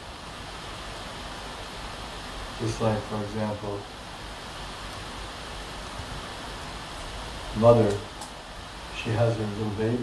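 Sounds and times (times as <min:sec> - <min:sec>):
recording hiss: 0:00.0 - 0:10.0.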